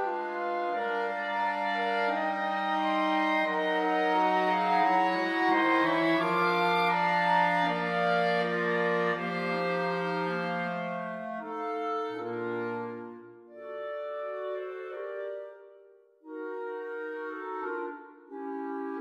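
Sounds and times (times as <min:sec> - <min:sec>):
clarinet choir playing chords: 0:00.0 - 0:19.0.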